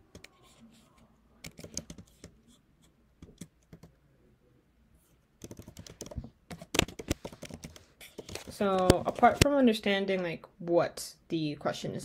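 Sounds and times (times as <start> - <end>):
typing on computer keyboard: 1.4 - 2.4, 3.2 - 3.9, 5.4 - 9.5.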